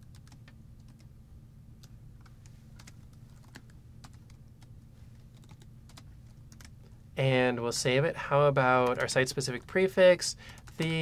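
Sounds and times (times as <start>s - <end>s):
computer keyboard keystrokes: 0.0s - 1.1s, 2.2s - 4.4s, 5.3s - 6.7s
steady low hum: 0.0s - 11.0s.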